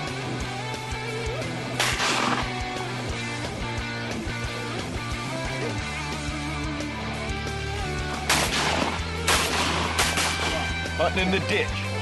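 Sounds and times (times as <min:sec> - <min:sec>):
background music: 0:00.0 - 0:12.0
shotgun shots: 0:01.8 - 0:02.6, 0:08.3 - 0:10.8.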